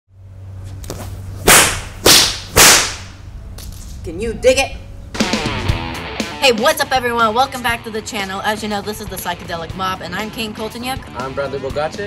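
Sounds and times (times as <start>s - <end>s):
steady low hum: 0.1s - 11.2s
whip cracking: 1.4s - 3.2s.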